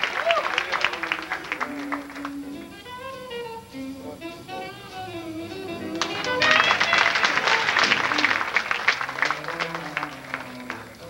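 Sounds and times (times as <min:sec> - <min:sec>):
audience applauding: 0:00.0 - 0:02.6, 0:05.8 - 0:11.0
recorded string music: 0:00.0 - 0:11.0.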